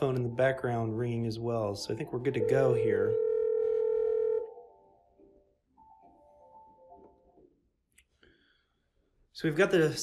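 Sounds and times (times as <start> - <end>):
faint musical ringtone: 1.9 - 7.4
phone ringback tone: 2.4 - 4.7.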